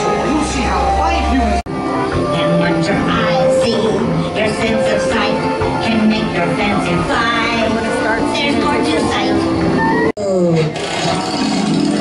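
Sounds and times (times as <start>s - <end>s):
music and effects: 0.0s - 12.0s
recorded voice: 2.4s - 9.4s.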